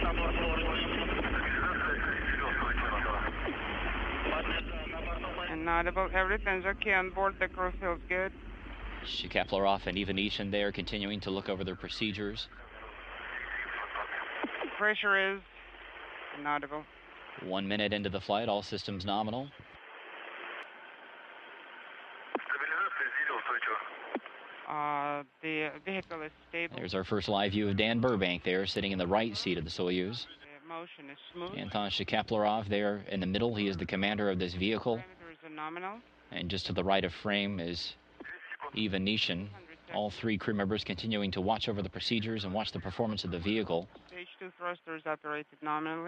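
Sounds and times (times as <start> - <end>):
faint voice over radio: 0.0 - 3.6, 4.2 - 8.3, 9.0 - 15.4, 17.4 - 19.5, 22.4 - 24.0, 25.8 - 46.0
radio static: 0.0 - 21.7, 22.3 - 46.0.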